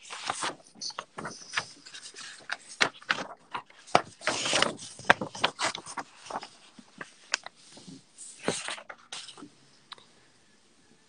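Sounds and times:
paper rustling on desk: 0.0s - 9.5s.

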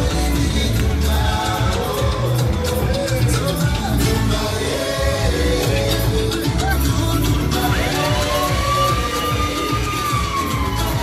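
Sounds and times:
live dance music with bass beat: 0.0s - 11.0s.

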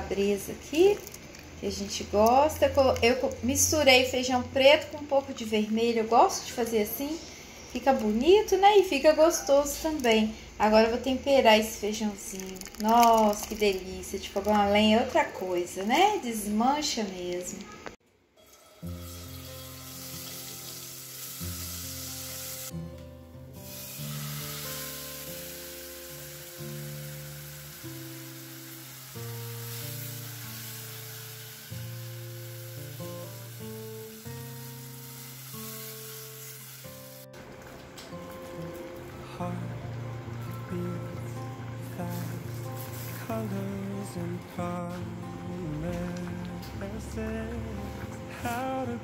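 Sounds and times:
slow background music: 0.0s - 16.8s, 18.2s - 49.0s
food sizzling in a pan: 18.4s - 22.8s, 23.5s - 37.3s, 41.8s - 43.4s.

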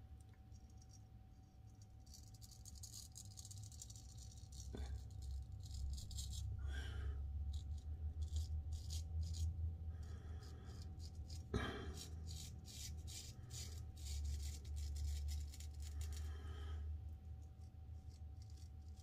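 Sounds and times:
razor scraping stubble: 1.8s - 16.5s, 17.3s - 19.0s
heating hum: 3.6s - 19.0s.

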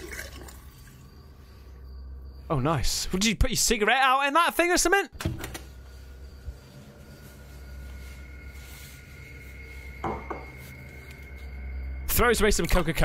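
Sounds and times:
steady low hum: 5.6s - 12.3s.

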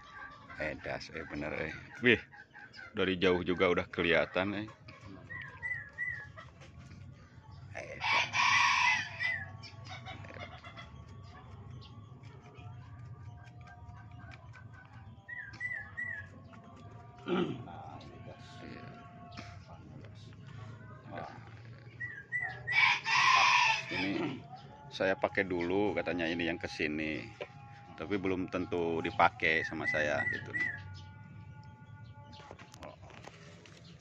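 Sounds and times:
chicken calling: 0.0s - 6.6s, 21.1s - 24.6s, 28.6s - 31.0s
rooster crowing: 8.0s - 9.5s, 22.3s - 24.6s.

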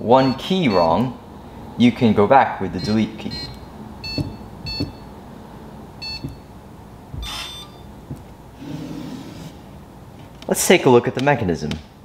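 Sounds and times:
keypad electronic beeps: 2.8s - 5.1s, 6.0s - 6.4s, 7.2s - 7.9s.

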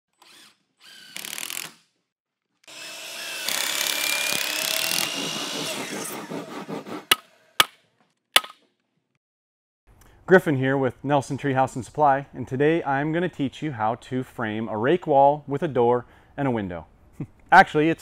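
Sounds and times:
power tool cutting wood: 0.1s - 1.8s, 2.6s - 7.6s.

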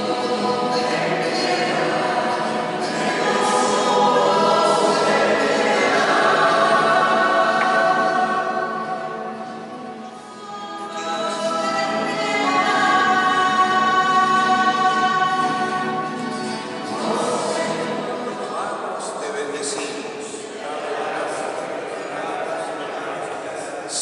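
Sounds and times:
church choir singing: 0.0s - 19.1s, 20.1s - 24.0s.

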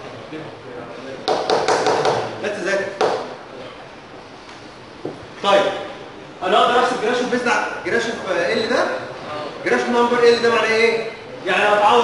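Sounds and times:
sharp taps: 3.0s - 3.3s.

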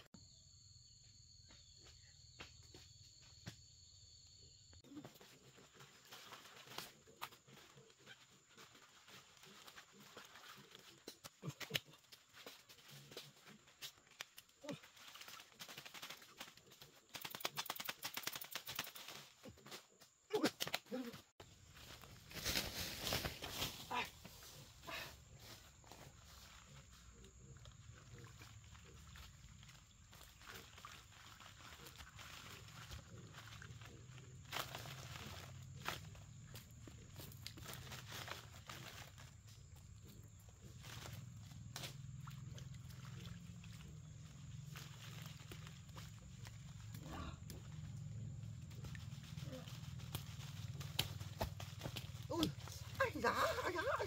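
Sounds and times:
leafy branches rustling: 21.5s - 25.8s.

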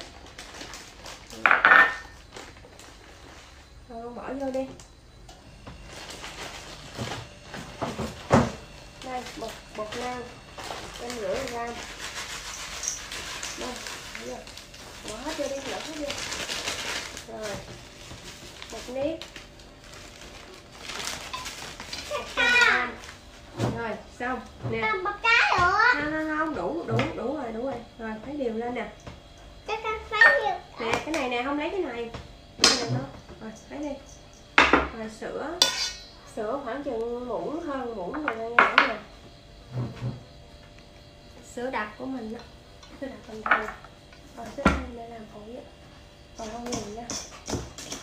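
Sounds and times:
flour shaken from plastic bag: 10.9s - 17.5s
clatter against steel mixing bowl: 46.4s - 48.0s.

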